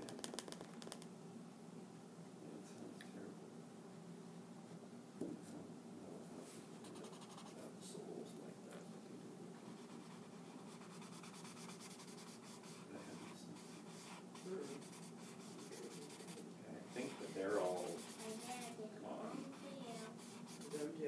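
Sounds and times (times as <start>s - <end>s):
scratchy strokes on paper: 6.8s - 7.7s, 9.6s - 21.0s.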